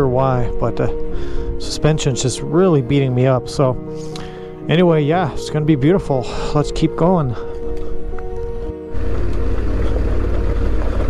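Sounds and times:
background music with held tones: 0:00.0 - 0:11.0
motorcycle engine rumble: 0:08.9 - 0:11.0.

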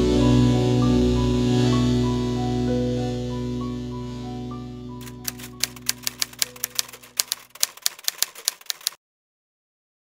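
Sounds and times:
rapid sharp clicks: 0:05.0 - 0:09.0.

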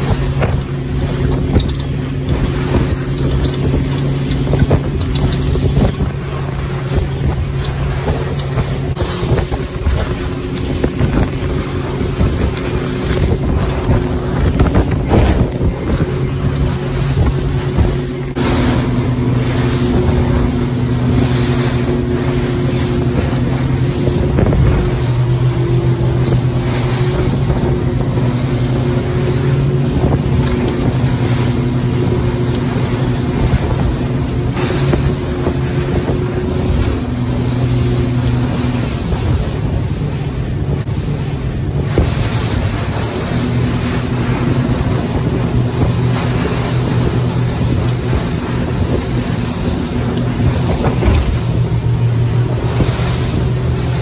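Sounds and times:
motorboat engine hum: 0:00.0 - 0:54.0
water rushing along hull: 0:00.0 - 0:54.0
wind buffeting microphone: 0:00.0 - 0:54.0.

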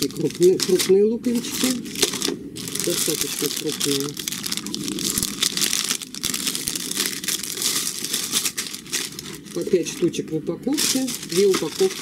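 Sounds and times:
plastic packaging crinkling: 0:00.0 - 0:12.0.

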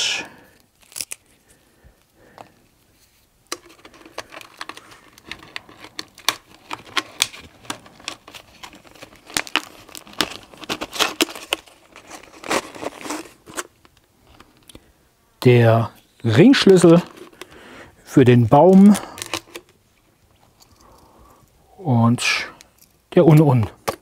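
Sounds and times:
wire rustling: 0:00.0 - 0:14.7
plastic bottle crinkling: 0:00.5 - 0:02.7, 0:03.5 - 0:14.8.

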